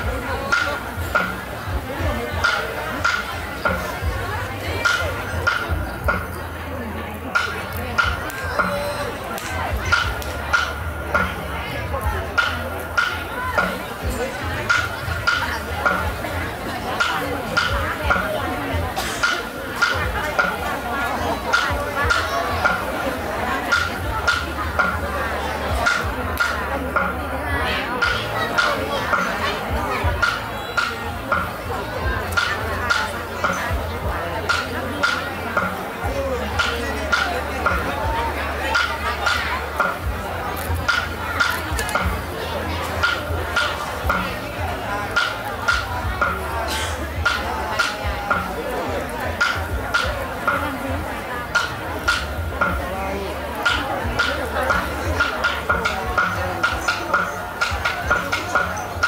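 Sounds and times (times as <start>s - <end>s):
ringing percussion beat: 0.0s - 59.0s.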